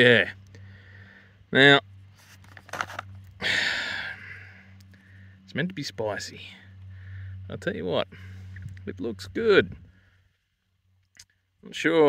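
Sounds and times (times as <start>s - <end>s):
plastic packet crinkling: 2.4s - 3.1s.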